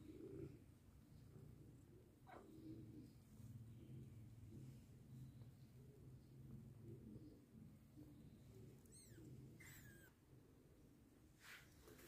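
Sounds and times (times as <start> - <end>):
young animal squeaks: 8.9 - 10.2.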